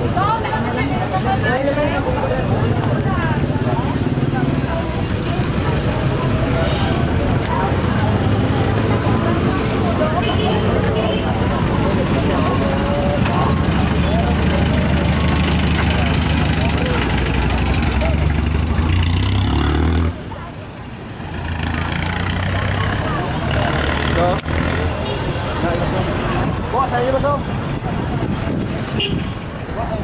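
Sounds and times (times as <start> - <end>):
people talking: 0.0 - 19.4, 20.0 - 30.0
traffic noise: 0.0 - 30.0
vehicle engine running: 11.4 - 20.3.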